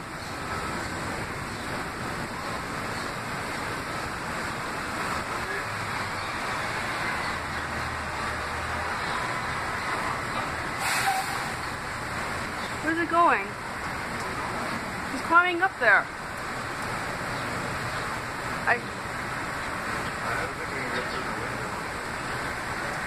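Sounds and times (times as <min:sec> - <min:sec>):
rushing outdoor background noise: 0:00.0 - 0:23.0.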